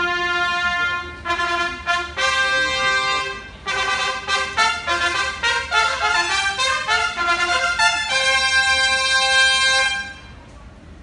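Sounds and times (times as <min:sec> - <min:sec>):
brass section holding a chord: 0:00.0 - 0:10.4.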